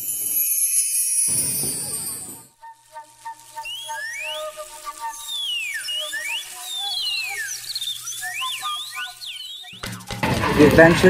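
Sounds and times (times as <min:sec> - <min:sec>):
birds whistling: 0:01.9 - 0:10.8.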